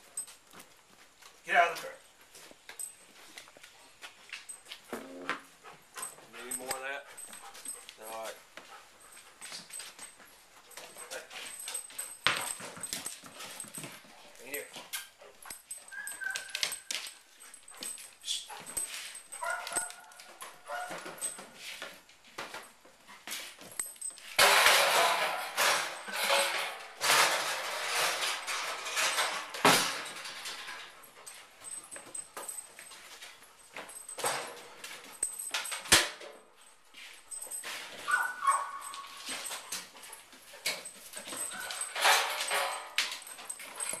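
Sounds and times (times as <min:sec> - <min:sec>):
dog scuffling and rattling: 0:02.2 - 0:44.0
dog whining: 0:15.7 - 0:17.6, 0:38.0 - 0:39.6, 0:41.4 - 0:42.0.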